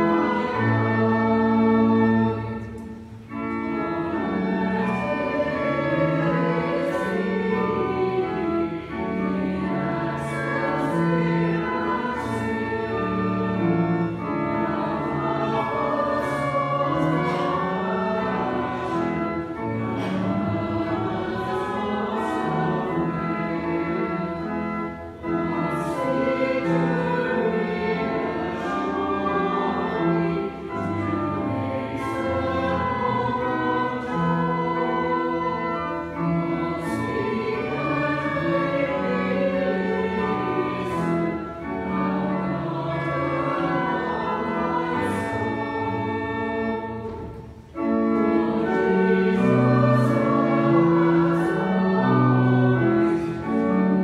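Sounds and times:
choir and congregation singing hymn: 0.0 - 54.0
pipe organ chords: 0.0 - 54.0.

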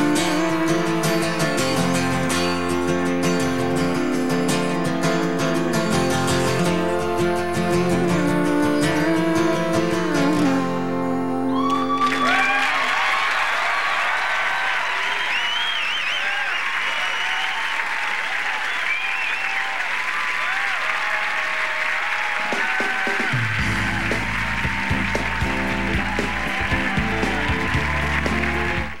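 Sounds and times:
music: 0.0 - 12.4, 22.5 - 29.0
audience applauding and cheering: 11.5 - 29.0
whistles: 14.2 - 20.6.

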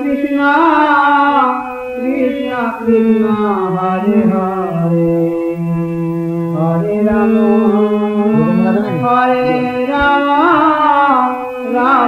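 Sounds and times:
musical accompaniment: 5.2 - 11.8
person chanting long note: 6.6 - 11.8.

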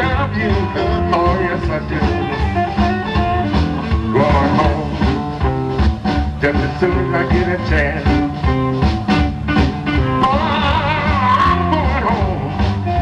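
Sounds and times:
person singing: 0.0 - 2.7, 4.0 - 5.4, 6.4 - 8.4, 10.0 - 13.0
electric blues band: 0.0 - 13.0
amplified harmonica: 9.1 - 13.0.

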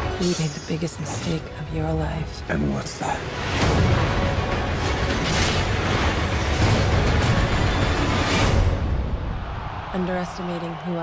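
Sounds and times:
trailer music: 0.0 - 10.6.

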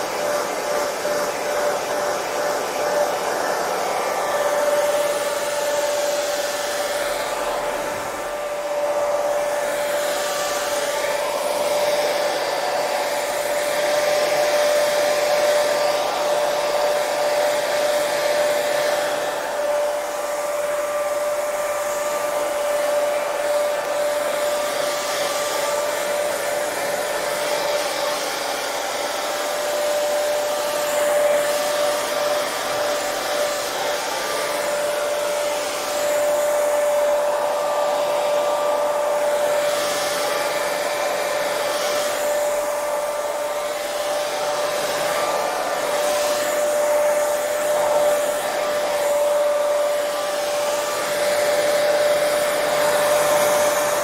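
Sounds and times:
hair dryer running: 0.0 - 54.0.

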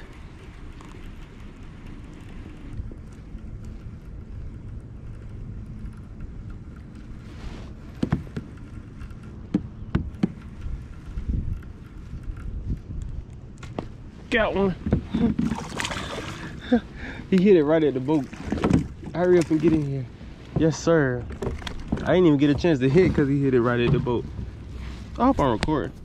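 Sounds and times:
faint steady whine: 0.0 - 26.0
wind and water rumble: 0.0 - 26.0
sharp clicks and knocks: 7.8 - 14.0.

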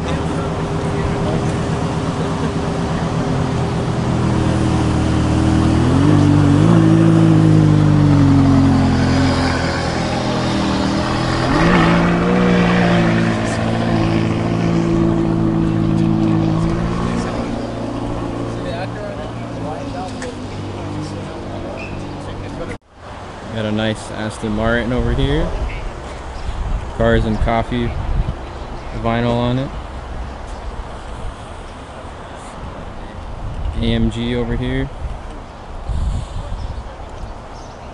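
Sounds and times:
car engine revving: 0.0 - 22.8.

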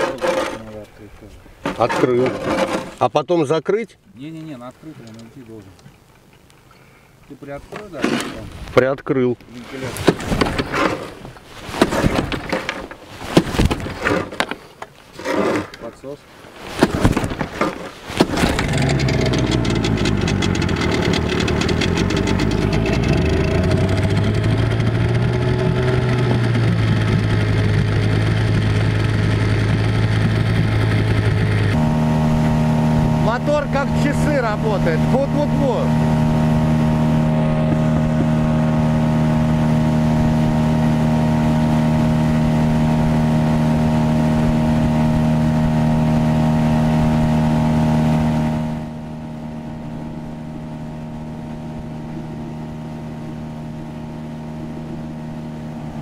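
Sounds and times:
outboard motor running: 10.0 - 15.9, 16.7 - 56.0.

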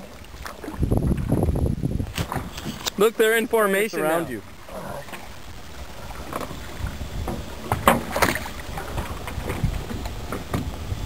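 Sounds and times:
wind rumble on microphone: 0.0 - 3.0, 4.6 - 11.0
water lapping and sloshing: 0.0 - 11.0
sharp splashes: 4.4 - 9.6.

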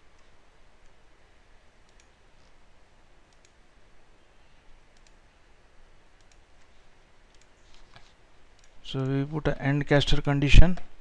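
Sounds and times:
low steady hiss: 0.0 - 11.0
computer mouse clicks: 1.8 - 2.6, 3.3 - 3.6, 4.9 - 5.2, 6.2 - 9.2.

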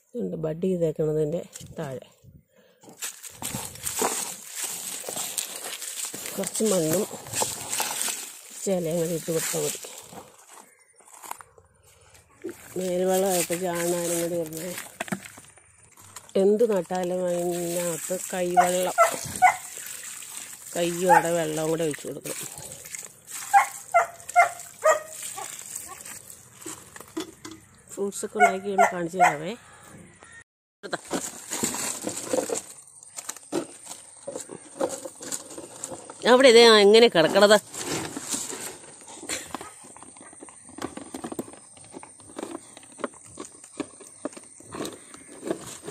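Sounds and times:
animal calling: 18.6 - 19.9.

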